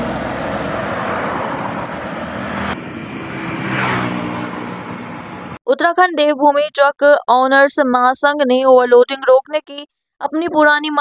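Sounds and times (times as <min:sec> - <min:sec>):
passing vehicle engine hum: 0:00.0 - 0:05.6
roadside traffic noise: 0:00.0 - 0:05.6.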